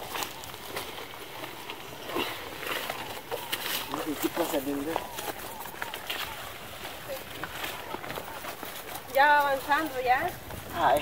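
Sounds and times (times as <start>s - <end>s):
outdoor background noise: 0.0s - 11.0s
plants rustling and crackling: 0.0s - 11.0s.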